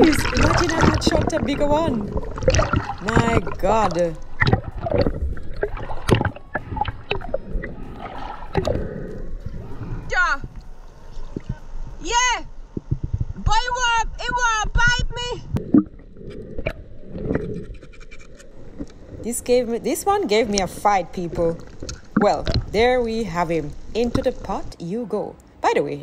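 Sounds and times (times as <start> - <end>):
water sloshing and splashing: 0.0 - 12.1, 15.4 - 24.8.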